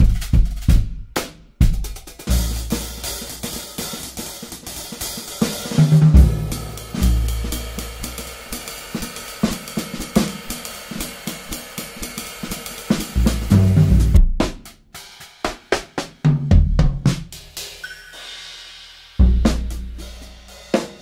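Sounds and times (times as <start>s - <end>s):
drum kit playing a groove: 0.0s - 21.0s.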